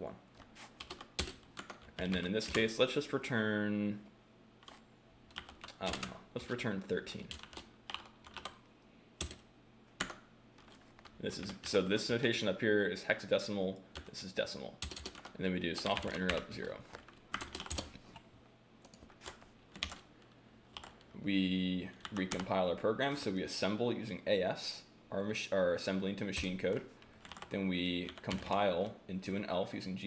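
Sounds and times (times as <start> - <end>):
computer keyboard typing: 0.8 - 2.7, 4.6 - 6.2, 7.3 - 8.6, 9.2 - 9.4, 10.0 - 11.8, 14.8 - 17.9, 18.8 - 20.1, 20.7 - 21.0, 22.0 - 22.5, 27.2 - 28.6.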